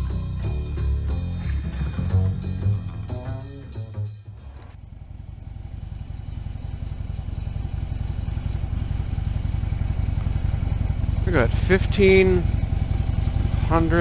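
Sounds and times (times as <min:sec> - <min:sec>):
music: 0:00.0 - 0:04.8
motorcycle engine idling: 0:00.0 - 0:14.0.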